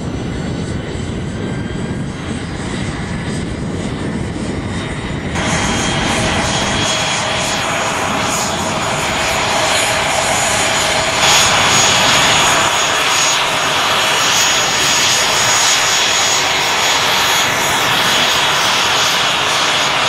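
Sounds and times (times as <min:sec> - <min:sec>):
jet engine running: 0:00.0 - 0:20.0.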